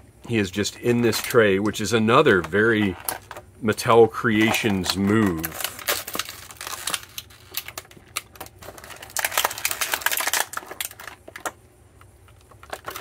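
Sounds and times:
plastic packaging crinkling: 0.8 - 11.6, 12.2 - 13.0.

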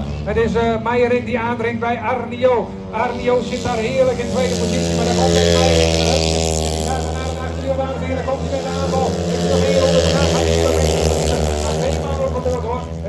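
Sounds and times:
racing motorcycle engines droning: 0.0 - 13.0.

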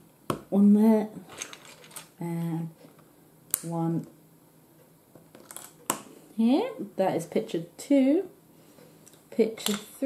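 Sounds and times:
plastic pieces clicking together: 1.3 - 2.1.

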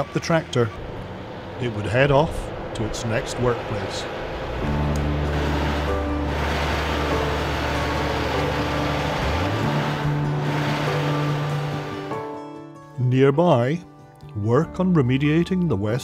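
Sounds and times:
heavy truck pulling away: 0.0 - 12.4
background music: 0.0 - 16.0.

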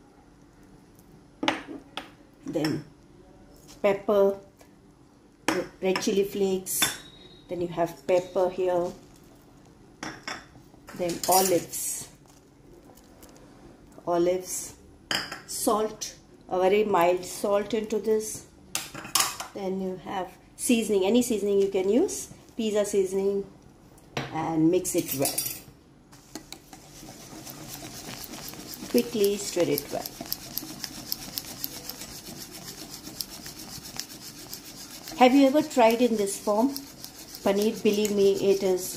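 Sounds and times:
wire whisk scraping steel pan: 26.2 - 38.9.

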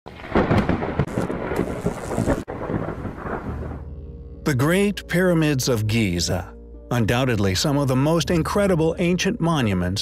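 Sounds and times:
thunder crackling and rumbling: 0.1 - 5.4.

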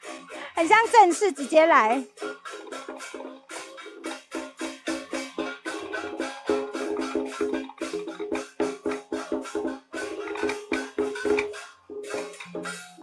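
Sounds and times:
drum beating fast rhythm: 0.0 - 13.0.

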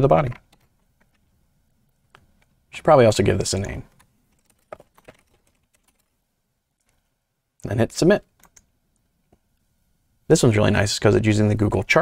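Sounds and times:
faint keyboard typing: 0.2 - 1.3, 2.0 - 2.6, 3.5 - 6.2, 6.8 - 7.2, 8.2 - 9.7.

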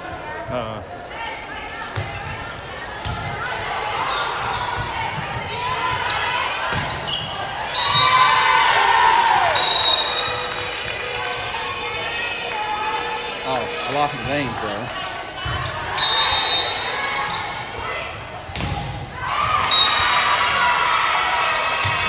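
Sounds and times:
players and spectators shouting: 0.6 - 22.0.

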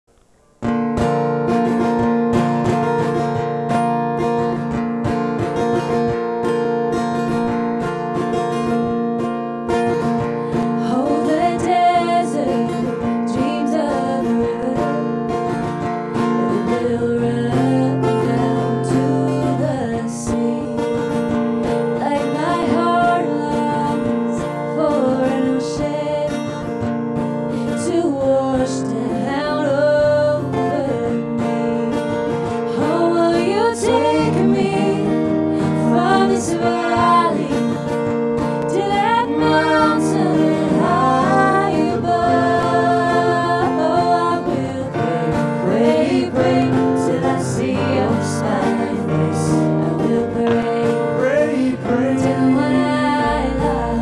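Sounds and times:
strummed acoustic guitars: 0.3 - 54.0
woman singing: 9.9 - 26.8, 27.6 - 54.0.

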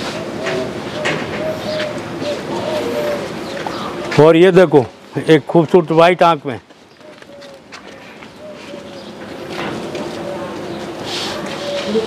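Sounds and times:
pigeons cooing: 0.0 - 4.9, 6.9 - 12.0.

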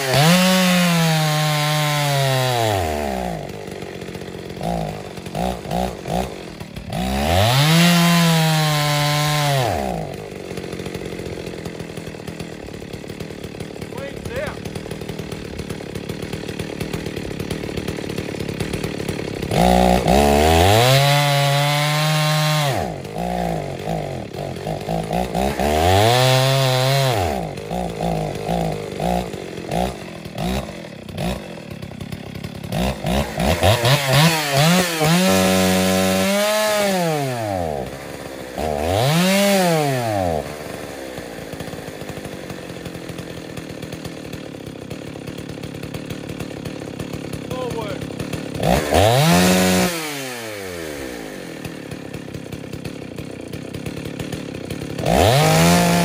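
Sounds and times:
chainsaw ragged idle: 0.0 - 56.0
chainsaw revving: 0.0 - 56.0.

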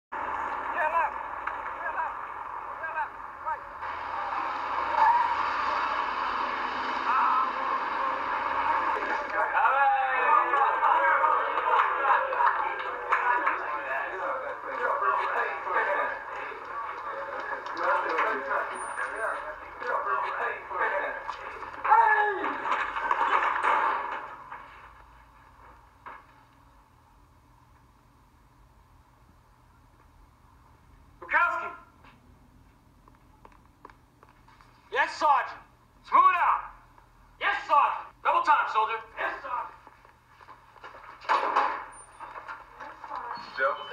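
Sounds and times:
muffled voices: 0.2 - 6.2, 7.0 - 26.4, 34.6 - 43.9.

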